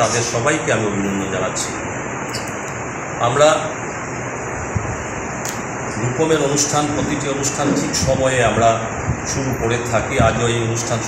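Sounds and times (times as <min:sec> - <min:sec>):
hall background hiss: 0:00.0 - 0:11.0.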